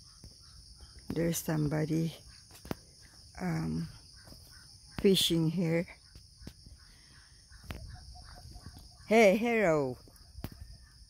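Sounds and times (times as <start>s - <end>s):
insects droning: 0.0s - 11.0s
faint animal calls: 1.9s - 11.0s.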